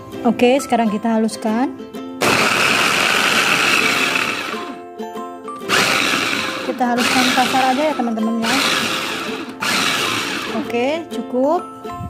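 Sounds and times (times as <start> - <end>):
background music: 0.0 - 12.0
food chopper grinding: 2.2 - 4.8, 5.6 - 10.7.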